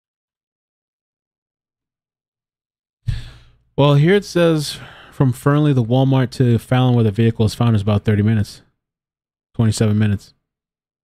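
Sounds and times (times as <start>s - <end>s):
man sighing: 3.1s - 3.6s.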